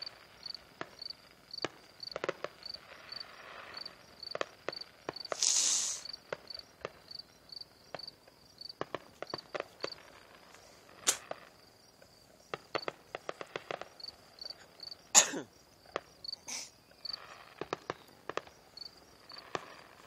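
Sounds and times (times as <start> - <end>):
fireworks bang: 0.0 - 7.1, 8.7 - 11.6, 12.5 - 14.2, 17.1 - 20.0
cricket chirping: 0.0 - 20.0
distant fireworks popping and crackling: 0.0 - 20.0.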